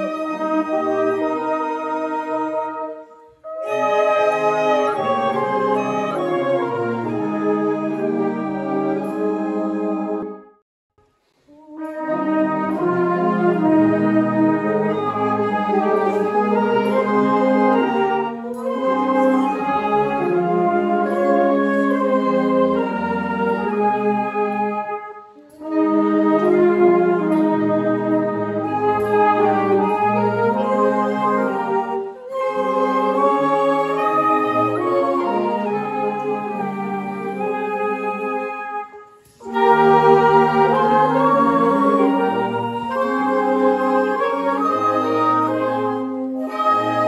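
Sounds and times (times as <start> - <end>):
brass band playing a hymn: 0.0 - 10.4, 11.5 - 47.0.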